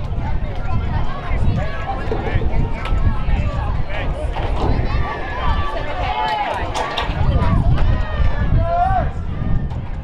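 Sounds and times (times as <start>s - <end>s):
voices shouting and calling out: 0.0s - 10.0s.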